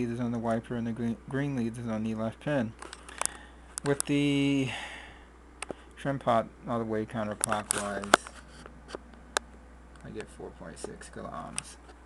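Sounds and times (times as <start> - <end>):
steady low hum: 0.0 - 12.0
sharp clicks: 2.8 - 4.2.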